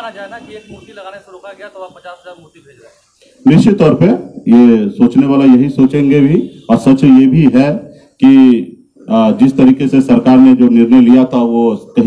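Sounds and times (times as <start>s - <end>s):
man speaking into microphones: 0.0s - 12.0s.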